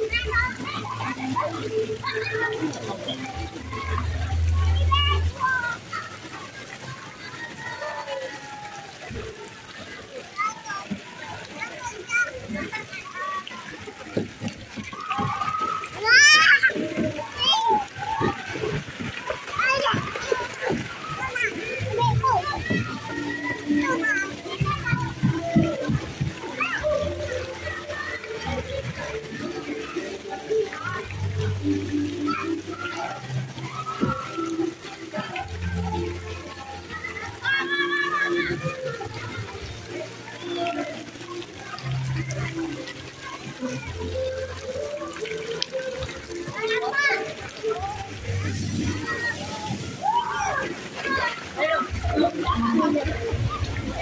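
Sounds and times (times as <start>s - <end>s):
children's voices: 0.0s - 54.0s
water splashing in a pool: 0.0s - 54.0s.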